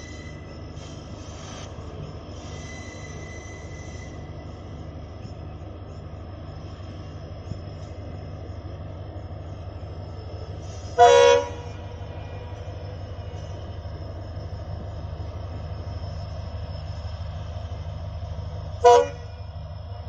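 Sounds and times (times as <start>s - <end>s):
locomotive engine drone: 0.0s - 20.0s
train horn blast: 11.0s - 12.5s, 18.8s - 19.4s.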